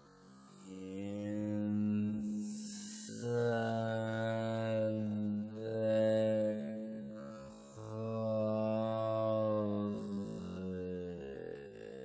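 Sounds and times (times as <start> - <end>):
droning chant: 0.0 - 12.0.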